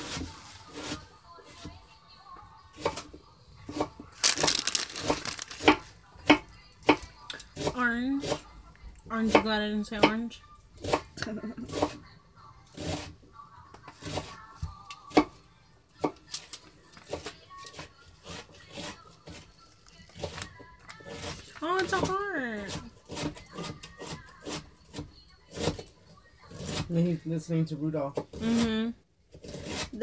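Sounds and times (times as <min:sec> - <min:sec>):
faint music: 0:00.0 - 0:30.0
hard candies clicking on foil: 0:04.1 - 0:07.5, 0:16.1 - 0:17.7.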